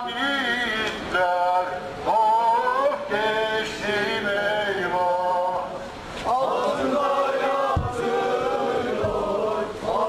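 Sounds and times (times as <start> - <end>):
group singing in unison: 0.0 - 10.0.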